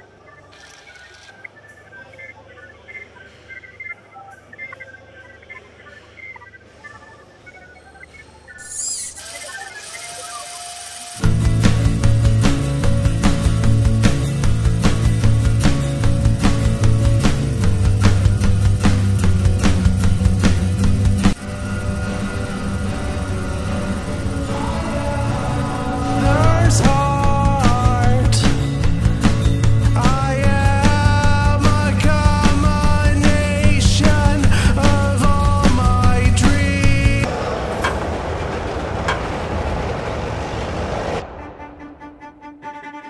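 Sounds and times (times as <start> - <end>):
electronic blips and chirps: 0.0 - 11.4
low hum: 1.3 - 43.0
electronic sweep and hiss: 5.5 - 12.4
loud bass-heavy music: 11.2 - 37.4.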